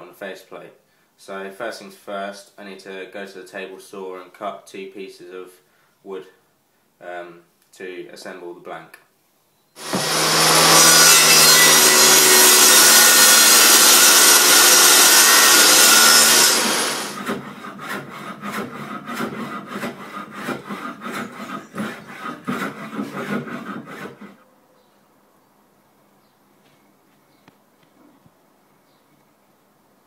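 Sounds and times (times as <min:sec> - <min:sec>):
table saw cutting wood: 0:09.8 - 0:24.4.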